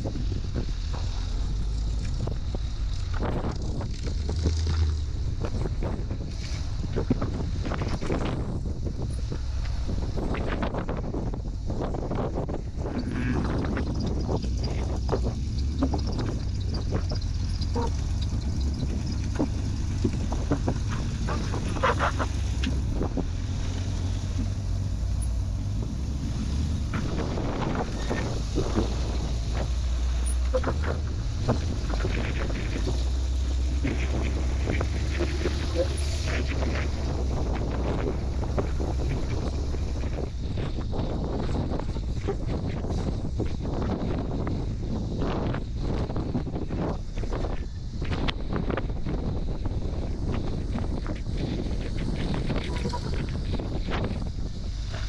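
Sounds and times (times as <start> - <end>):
buggy engine running: 0.0 - 55.0
wind rumble on microphone: 0.0 - 55.0.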